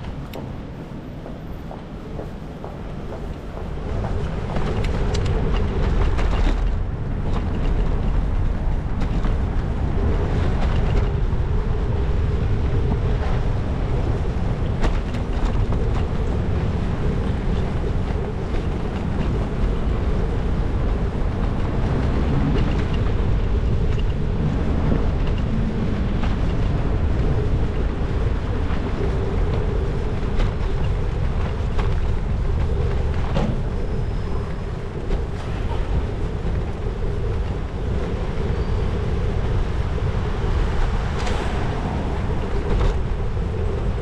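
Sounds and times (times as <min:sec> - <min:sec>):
tyres rumbling on road: 0:00.0 - 0:44.0
wind buffeting microphone: 0:00.0 - 0:44.0.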